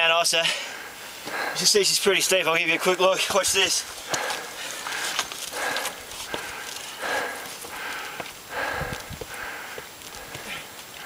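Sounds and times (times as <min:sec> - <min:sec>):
person breathing hard: 0:00.4 - 0:01.7, 0:04.0 - 0:11.0
footsteps on rock: 0:03.1 - 0:11.0.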